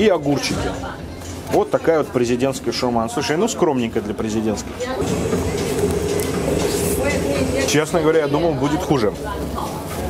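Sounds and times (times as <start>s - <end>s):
mechanical hum of low tones: 3.6s - 10.0s.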